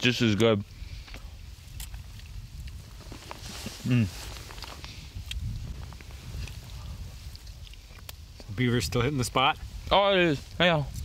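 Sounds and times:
chewing: 0:01.0 - 0:08.5
person humming mmm: 0:03.8 - 0:04.2.

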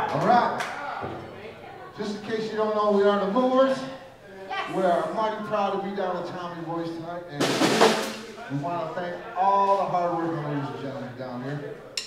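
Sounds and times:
man talking: 0:04.7 - 0:11.8
drum kit burst: 0:07.4 - 0:08.4.

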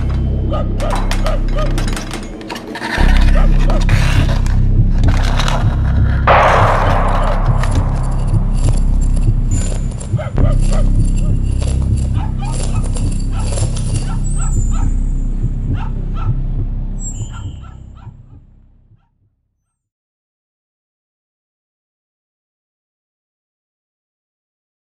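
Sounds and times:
dogs barking: 0:00.0 - 0:02.2, 0:12.0 - 0:15.0, 0:15.6 - 0:18.4
steady low rumble: 0:03.0 - 0:18.7.

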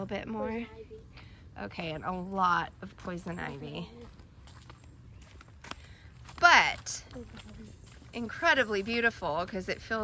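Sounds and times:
footsteps on dirt trail: 0:01.0 - 0:10.0.

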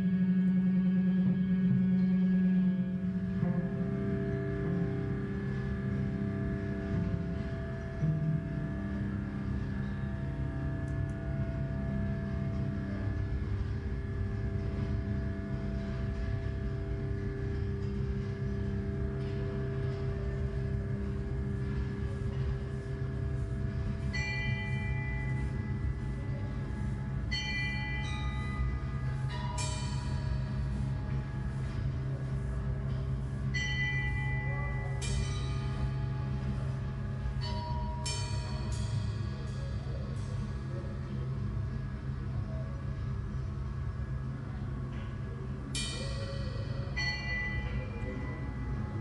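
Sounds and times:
low drone with held tones: 0:00.0 - 0:49.0
bell-like metallic strikes: 0:22.2 - 0:31.7, 0:32.3 - 0:40.5, 0:45.7 - 0:49.0.

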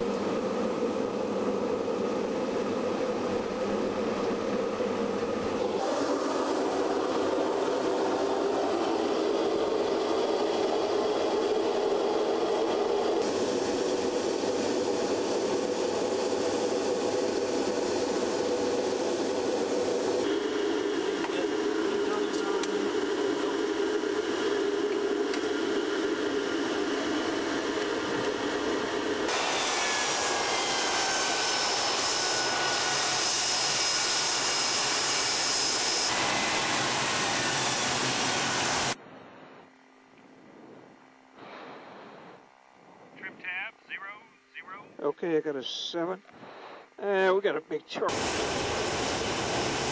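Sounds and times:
jet turbine roar with whine: 0:00.0 - 0:49.9.

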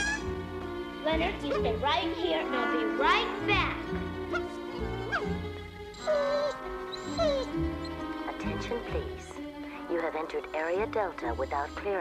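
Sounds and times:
dog whimpering: 0:00.0 - 0:00.3, 0:04.3 - 0:09.0, 0:11.1 - 0:12.0
background music: 0:00.0 - 0:12.0.

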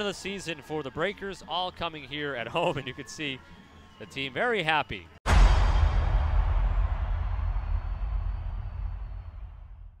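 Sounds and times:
deep electronic boom: 0:05.3 - 0:10.0.

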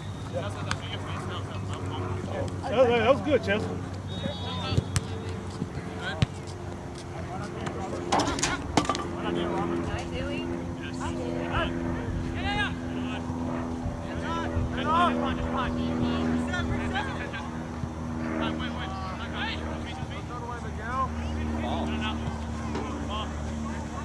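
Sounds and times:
distant shouts: 0:00.0 - 0:06.4.

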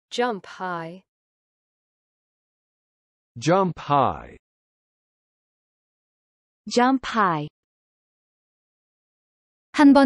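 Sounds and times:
tail of spoken word: 0:03.4 - 0:04.4.

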